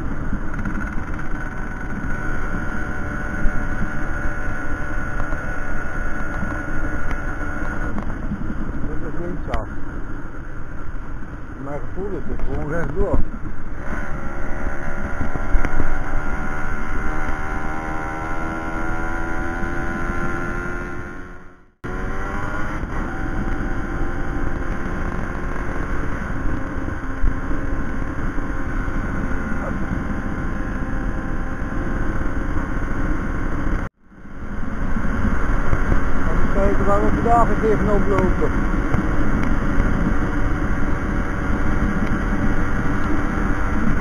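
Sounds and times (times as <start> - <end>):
moped engine running: 0.0 - 44.0
wind noise: 0.0 - 44.0.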